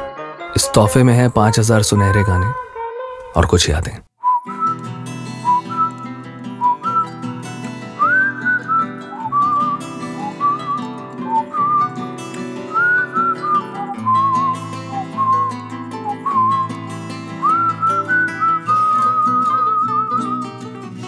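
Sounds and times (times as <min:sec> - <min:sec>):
whistled melody: 0:04.2 - 0:21.0.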